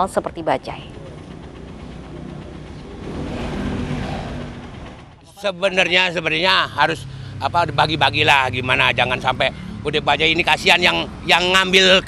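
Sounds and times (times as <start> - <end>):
auto-rickshaw engine running: 0.0 - 12.0.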